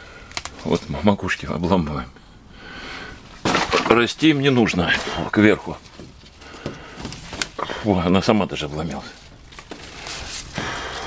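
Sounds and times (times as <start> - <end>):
leaves and stems rustling: 3.2 - 11.0.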